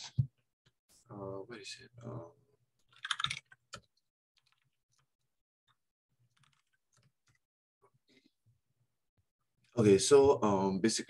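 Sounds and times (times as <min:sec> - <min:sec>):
computer keyboard typing: 0:02.9 - 0:04.7, 0:06.3 - 0:07.4.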